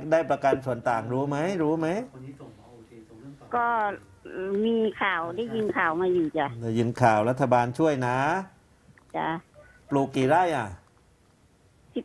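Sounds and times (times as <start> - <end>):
woman speaking over telephone: 3.6 - 6.6, 9.2 - 9.4.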